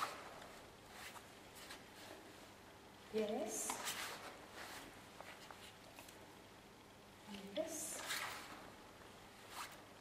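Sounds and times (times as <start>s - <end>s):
fabric vest rustling: 3.5s - 6.2s.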